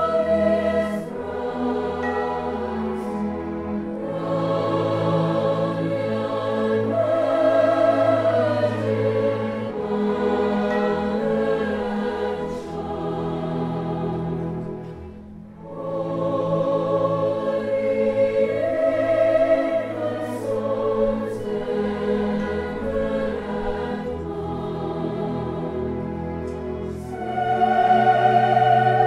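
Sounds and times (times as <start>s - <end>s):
orchestra and choir performing: 0.0s - 29.0s.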